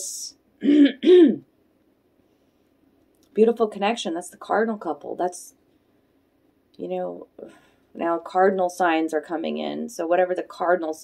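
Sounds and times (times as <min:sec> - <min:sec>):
woman clearing throat: 0:00.6 - 0:01.5.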